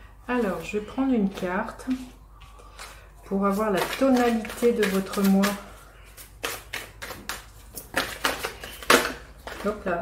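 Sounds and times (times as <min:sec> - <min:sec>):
cards being shuffled: 0:03.5 - 0:09.9.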